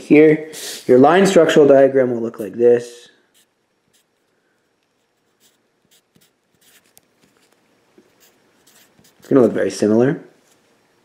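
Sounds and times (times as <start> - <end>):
pencil scratching on paper: 3.3 - 4.2, 5.0 - 9.7.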